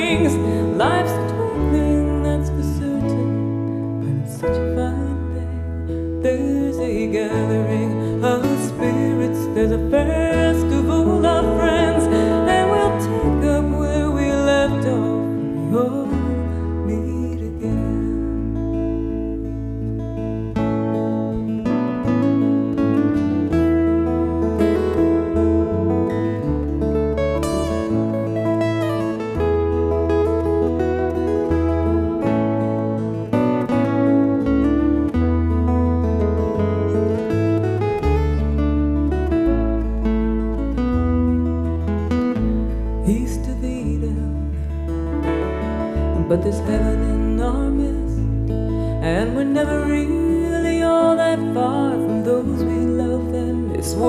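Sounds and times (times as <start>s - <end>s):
acoustic guitars strummed and picked: 0.0s - 54.0s
sustained low bass notes: 9.6s - 53.8s.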